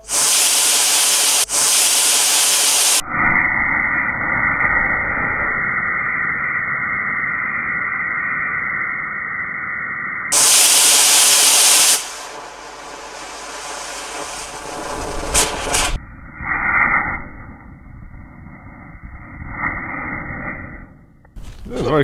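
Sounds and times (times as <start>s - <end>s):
rocket motor exhaust hiss: 0.0s - 9.0s, 10.3s - 16.0s
sharp pops: 10.3s - 16.0s.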